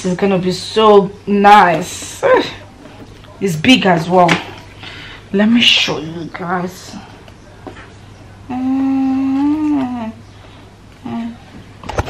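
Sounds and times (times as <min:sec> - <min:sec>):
woman humming: 0:08.5 - 0:10.3, 0:11.0 - 0:11.5.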